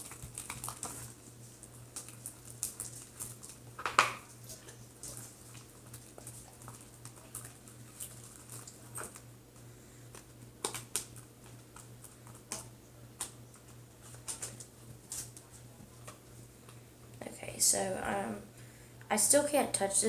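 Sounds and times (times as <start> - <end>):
low electrical hum: 0.0 - 20.0.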